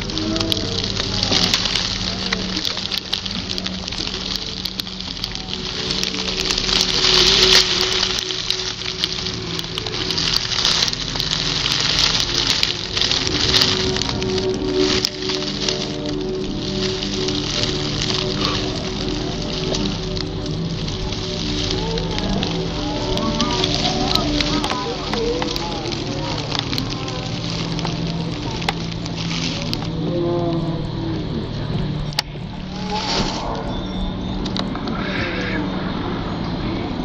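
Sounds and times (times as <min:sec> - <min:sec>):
dry grass and twigs crackling: 0:00.0 - 0:37.0
low musical drone: 0:00.0 - 0:37.0.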